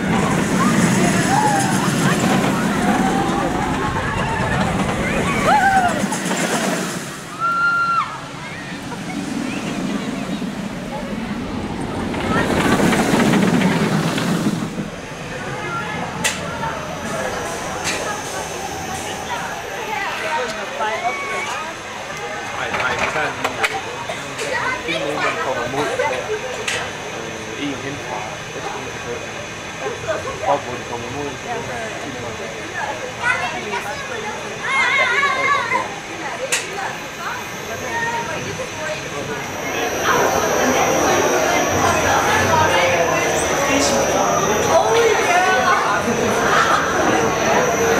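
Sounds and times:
children's voices: 0.0 - 22.6, 23.6 - 26.9, 32.8 - 47.9
roller coaster train rumbling past: 0.0 - 47.9.

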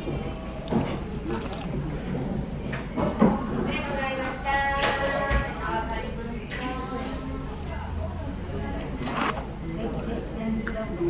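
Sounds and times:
slurping noodles: 1.2 - 1.8, 8.8 - 10.0.

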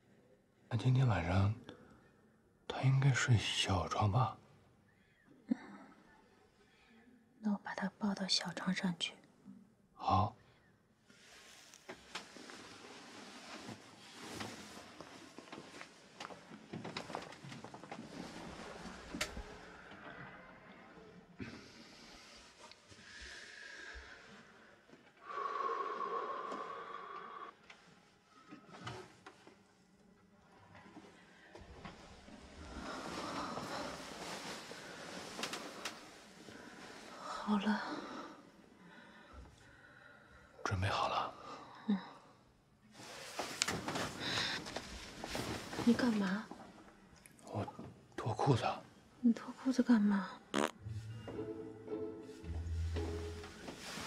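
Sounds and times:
rustling of bedding and clothes: 11.1 - 20.8, 27.6 - 37.6, 42.9 - 48.0, 50.8 - 54.0.

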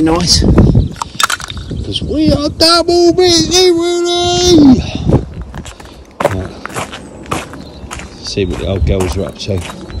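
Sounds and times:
footsteps on gravel: 5.2 - 10.0.

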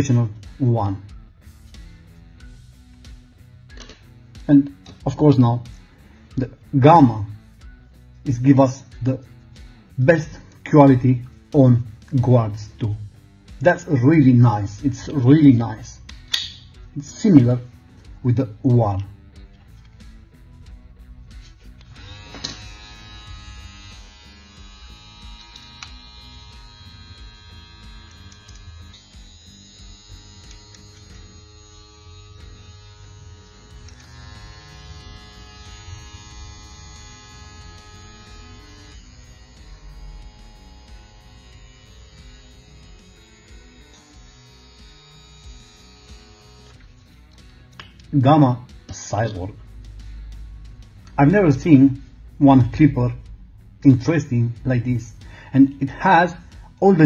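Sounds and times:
quiet guitar music: 0.0 - 57.0
hair clipper motor buzzing: 21.3 - 48.1, 54.0 - 57.0.

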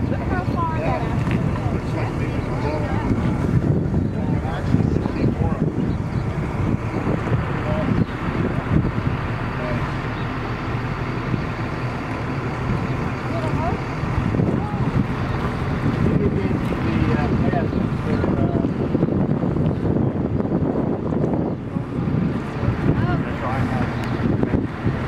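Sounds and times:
faint voices: 0.0 - 25.0
wind gusting on microphone: 0.0 - 25.0.

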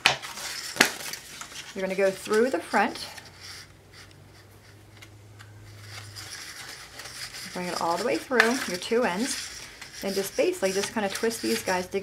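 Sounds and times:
low steady hum: 0.0 - 12.0
pipe cleaner rustling and scratching: 0.0 - 12.0.

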